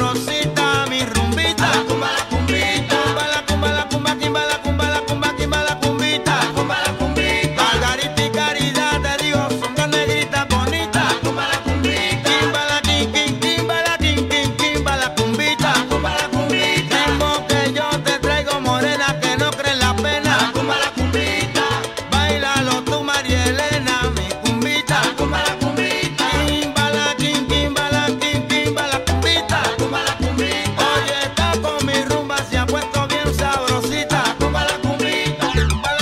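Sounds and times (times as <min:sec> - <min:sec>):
salsa dance music: 0:00.0 - 0:36.0.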